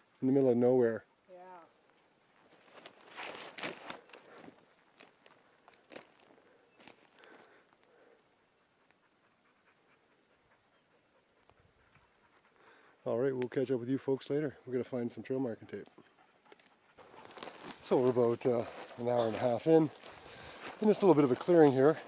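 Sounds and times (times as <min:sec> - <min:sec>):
footsteps crunching on twigs: 0:02.4 - 0:07.9, 0:17.0 - 0:22.0.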